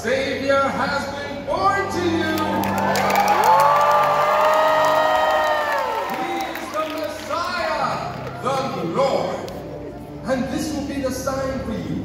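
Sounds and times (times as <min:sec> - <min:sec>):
cheering: 0:02.2 - 0:08.8
people clapping: 0:02.2 - 0:09.6.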